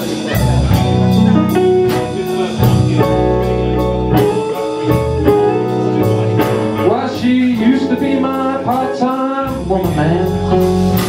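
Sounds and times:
drum kit with cymbals: 0.0 - 11.0
electric guitar: 0.0 - 11.0
man singing: 1.8 - 11.0.

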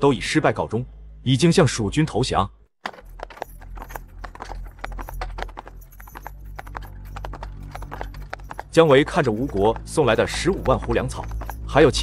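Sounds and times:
horse hooves clip-clopping: 2.8 - 12.0.

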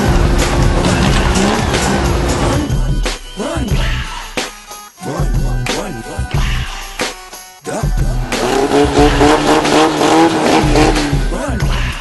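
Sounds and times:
car engine revving high: 0.0 - 2.7, 8.2 - 11.4
backing music: 0.0 - 12.0.

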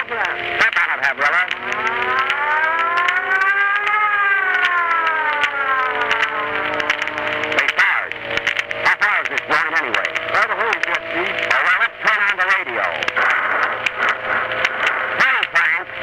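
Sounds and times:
siren wailing: 0.0 - 16.0
voices: 0.0 - 16.0.

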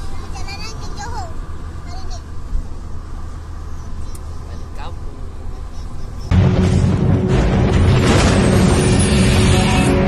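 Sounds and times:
car engine and tyre hum: 0.0 - 6.5.

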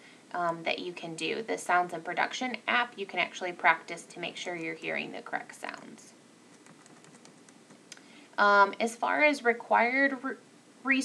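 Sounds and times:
low room hiss: 0.0 - 11.0
computer clicking: 6.5 - 8.0.

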